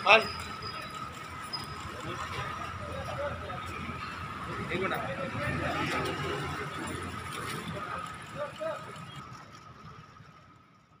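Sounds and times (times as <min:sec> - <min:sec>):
street background noise: 0:00.0 - 0:11.0.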